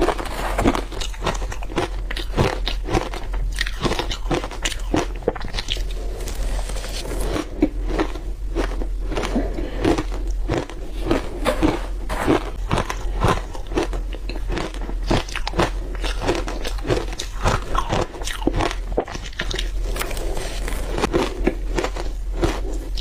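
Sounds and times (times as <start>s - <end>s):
crunching and chewing shaved ice: 0.0s - 23.0s.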